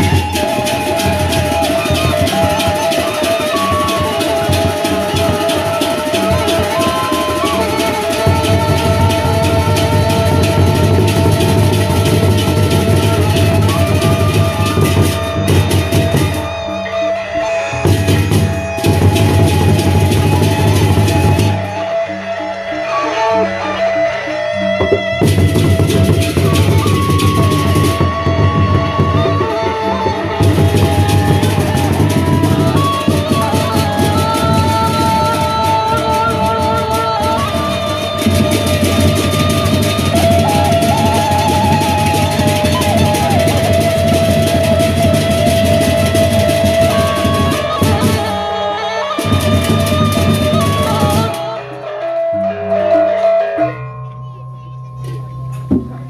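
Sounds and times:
barrel drums beaten fast: 0.0 - 16.4, 17.9 - 21.6, 24.8 - 29.6, 30.2 - 48.3
hand cymbals clashing: 0.0 - 21.5
gongs: 0.0 - 56.0
ringing metal tones: 52.4 - 56.0.

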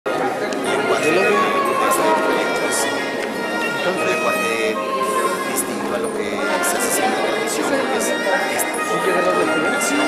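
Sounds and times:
crowd chatter: 0.1 - 10.0
man talking: 0.7 - 10.0.

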